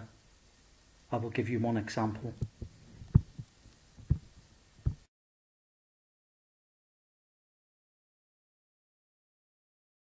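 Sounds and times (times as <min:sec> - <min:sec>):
low thumps: 0:02.4 - 0:05.1.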